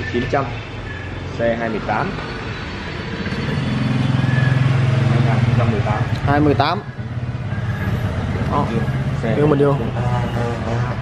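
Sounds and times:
motorcycle engine idling: 3.2 - 9.9.

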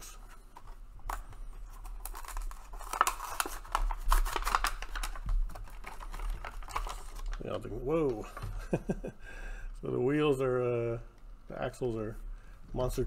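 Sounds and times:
plastic packaging crackling: 0.0 - 8.9.

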